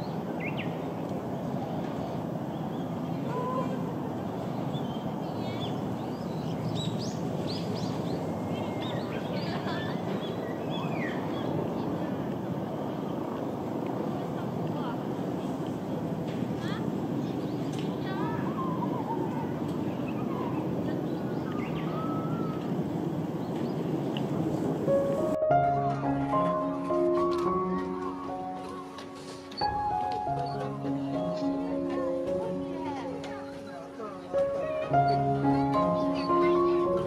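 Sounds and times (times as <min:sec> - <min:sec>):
small birds chirping: 0:00.0 - 0:13.5, 0:15.4 - 0:25.3
outdoor background noise: 0:00.0 - 0:37.0.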